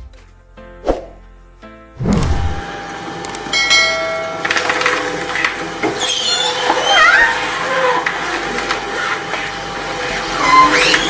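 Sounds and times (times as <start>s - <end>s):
metal shredder humming: 2.0s - 11.0s
ringing tone: 3.5s - 4.5s.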